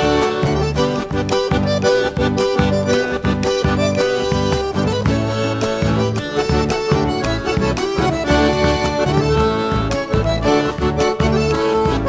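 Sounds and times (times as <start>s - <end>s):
sustained folk melody: 0.0s - 12.0s.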